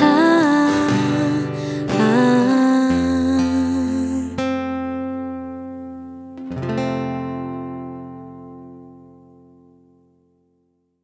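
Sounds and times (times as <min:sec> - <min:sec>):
woman singing: 0:00.0 - 0:05.1
acoustic guitar: 0:00.0 - 0:11.0.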